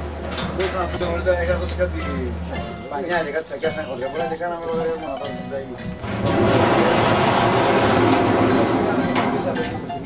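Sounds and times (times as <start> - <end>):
sheet-metal door scraping open: 6.0 - 9.5.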